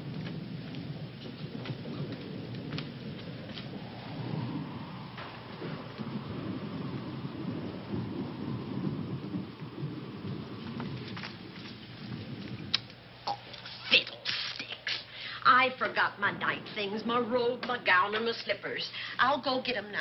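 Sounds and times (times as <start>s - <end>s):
rolling thunder: 0.0s - 14.1s, 14.8s - 20.0s
rain hiss: 0.0s - 20.0s.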